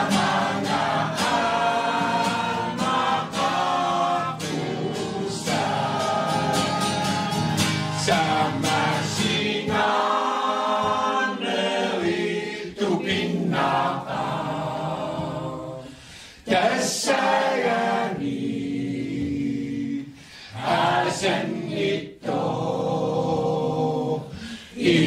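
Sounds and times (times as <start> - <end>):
mixed choir singing: 0.0 - 25.0.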